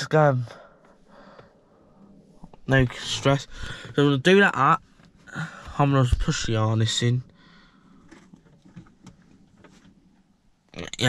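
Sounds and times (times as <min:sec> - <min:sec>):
man speaking: 0:00.0 - 0:00.6, 0:02.7 - 0:07.2, 0:10.8 - 0:11.0
plastic handling sounds: 0:07.9 - 0:10.2.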